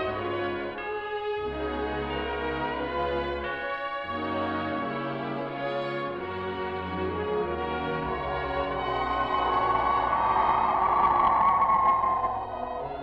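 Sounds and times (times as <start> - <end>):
orchestral music with brass chords: 0.0 - 10.1.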